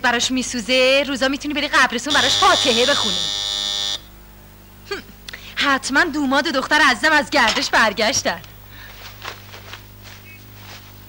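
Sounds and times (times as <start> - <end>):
doorbell buzzer: 2.1 - 4.1.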